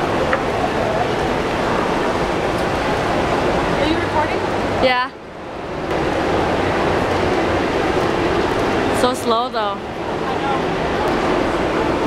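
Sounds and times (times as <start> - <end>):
many distant voices: 0.0 - 5.3, 5.9 - 12.0.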